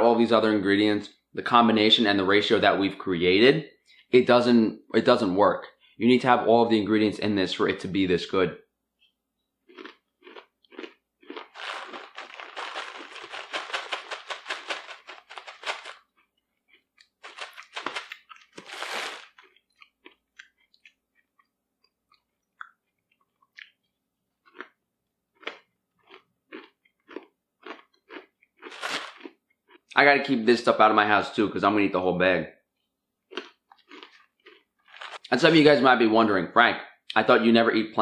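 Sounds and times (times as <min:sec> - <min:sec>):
chewing crunchy food: 0:09.6 - 0:30.0, 0:32.8 - 0:35.3.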